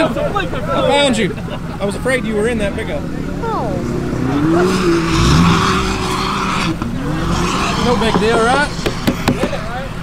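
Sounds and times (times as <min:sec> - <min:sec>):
pickup truck engine running: 0:00.0 - 0:10.0.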